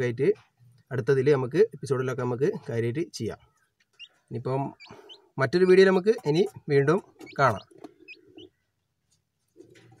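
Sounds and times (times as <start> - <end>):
chick peeping faintly: 0.3 - 10.0.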